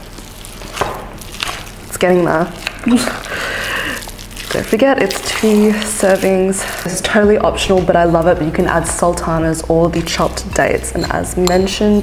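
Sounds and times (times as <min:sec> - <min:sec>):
spoon clicking against glass bowl: 0:10.9 - 0:12.0.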